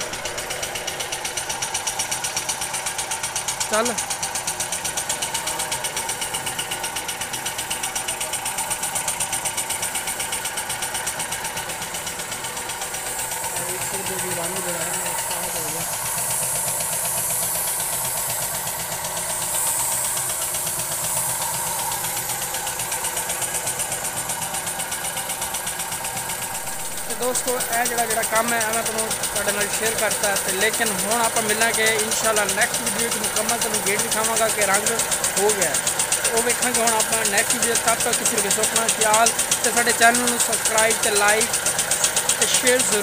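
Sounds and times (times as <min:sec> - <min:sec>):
air compressor chugging: 0:00.0 - 0:43.0
spray paint gun hissing: 0:00.0 - 0:43.0.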